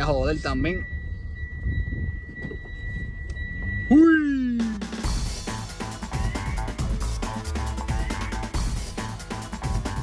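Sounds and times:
car electronic warning beep: 0.0s - 5.4s.

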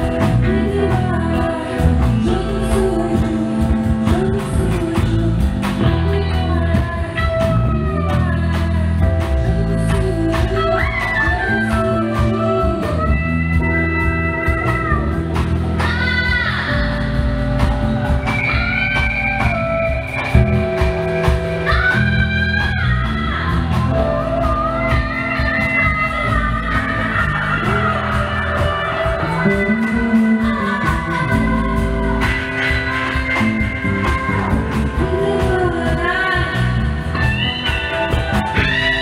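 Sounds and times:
bass guitar: 0.0s - 39.0s
electric guitar: 0.0s - 39.0s
steady drum beat: 0.0s - 39.0s
woman singing: 0.0s - 39.0s.

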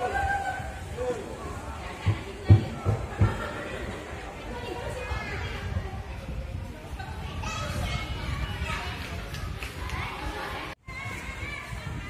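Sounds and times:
children playing and calling out: 0.0s - 12.0s.

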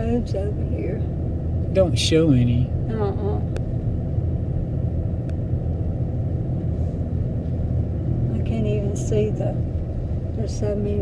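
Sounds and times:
car road noise rumble: 0.0s - 11.0s.

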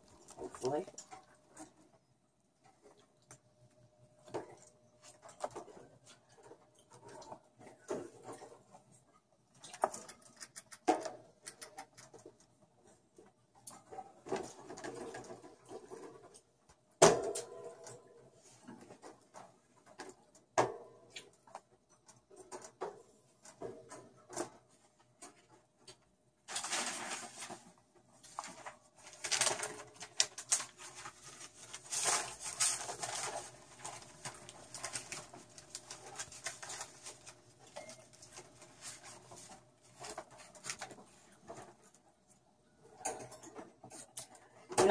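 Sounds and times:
rats rustling and scrabbling: 0.0s - 44.9s.

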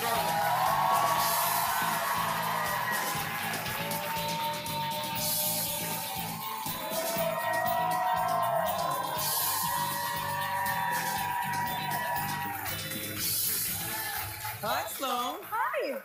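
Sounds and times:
band playing held notes over beat: 0.0s - 14.0s.

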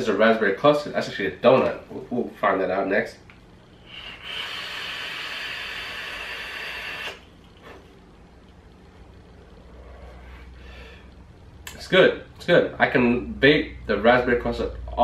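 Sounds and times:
breathy vapour exhale: 3.7s - 7.8s
vape coil sizzling: 3.8s - 7.8s.

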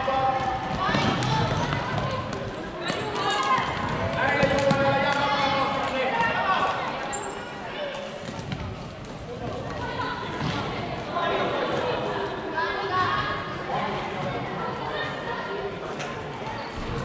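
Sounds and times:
voices calling out in echoing hall: 0.0s - 17.0s.

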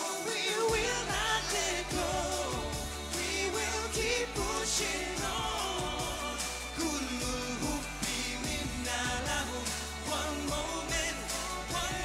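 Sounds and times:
men singing pop song: 0.0s - 12.0s
musical backing with bass and drums: 0.0s - 12.0s.

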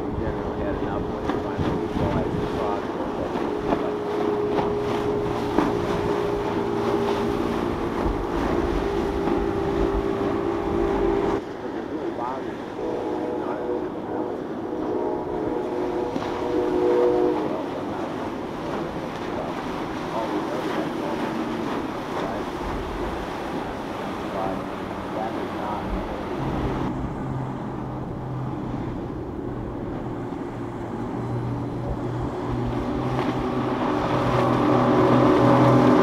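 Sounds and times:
wind rumble on microphone: 0.0s - 11.5s
boat engines droning: 0.0s - 36.0s.

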